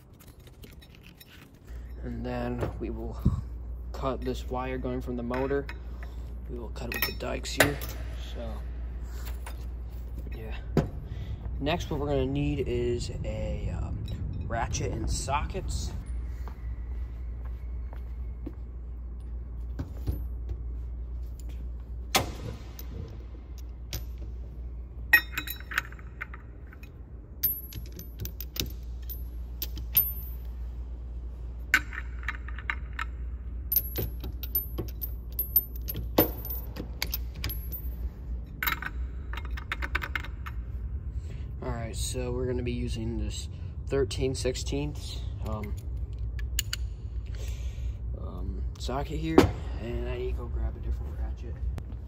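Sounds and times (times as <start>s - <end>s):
metallic clinks and clicks: 0.0s - 2.2s, 25.1s - 30.6s, 31.7s - 40.6s
low steady hum: 0.0s - 52.0s.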